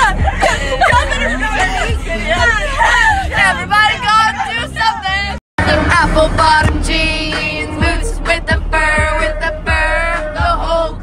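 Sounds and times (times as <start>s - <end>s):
young women shouting and chattering: 0.0s - 5.4s
low road rumble: 0.0s - 11.0s.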